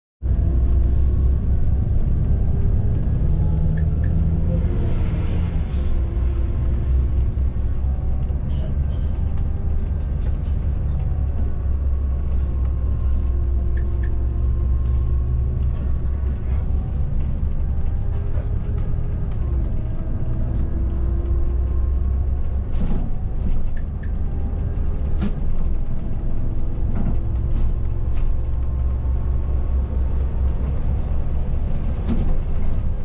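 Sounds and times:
diesel engine drone: 0.2 - 33.0
road and tyre noise: 0.2 - 33.0.

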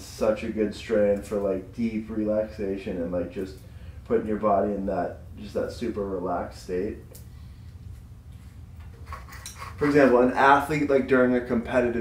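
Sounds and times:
man speaking: 0.0 - 7.1, 9.8 - 12.0
low steady hum: 0.0 - 12.0.

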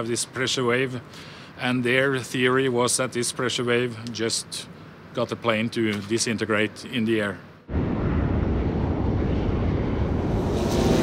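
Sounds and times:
fighter jet engine: 7.7 - 11.0.

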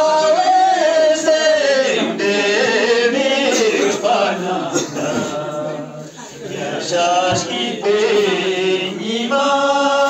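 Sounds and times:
men singing a slow chant: 0.0 - 10.0.

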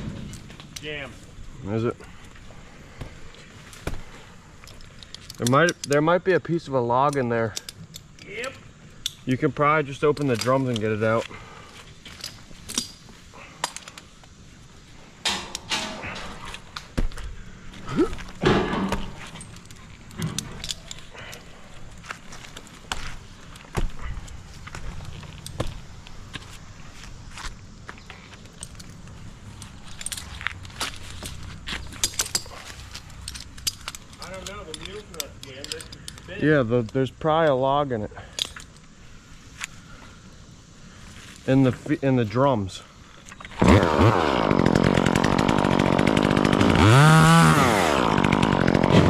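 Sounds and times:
metal climbing hardware clinking: 4.6 - 6.1, 10.0 - 11.2, 12.0 - 14.1, 18.4 - 22.8, 28.4 - 37.0, 38.2 - 38.9
rope and gloves scuffing on bark: 16.3 - 33.3.

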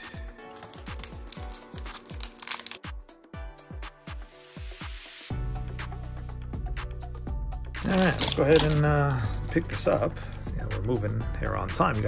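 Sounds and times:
foil wrapper crinkling and tearing: 0.0 - 2.9, 7.8 - 9.5
music with steady beat: 2.8 - 7.9.

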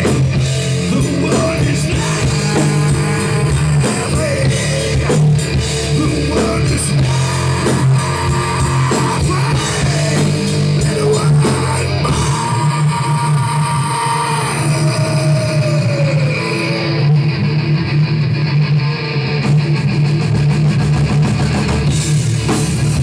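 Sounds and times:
heavy metal band playing: 0.0 - 23.0.

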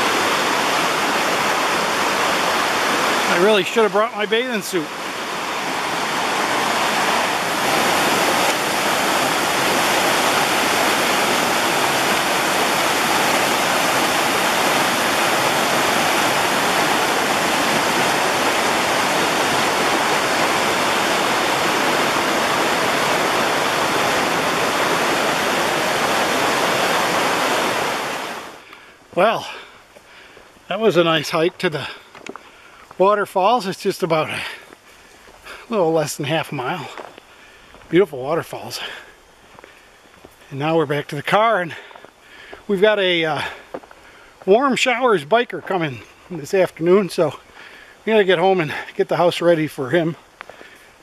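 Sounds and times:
water rushing over rocks: 0.0 - 32.1.

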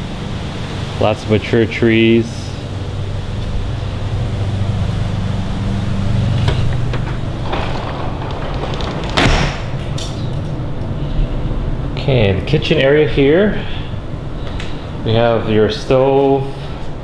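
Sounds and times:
steady low hum: 0.0 - 17.0
door opening and shutting: 5.5 - 11.1.

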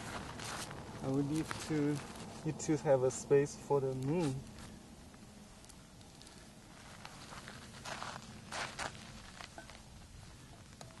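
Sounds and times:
footsteps crunching on gravelly sand: 0.0 - 4.8, 6.2 - 10.5.

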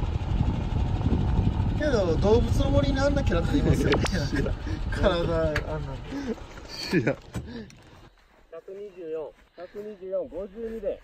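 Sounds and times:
wind buffeting microphone: 0.0 - 6.4
man talking: 8.6 - 11.0.

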